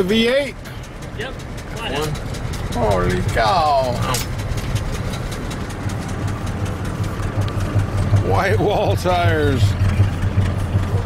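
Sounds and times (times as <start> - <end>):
engine idling with ticking: 0.0 - 11.0.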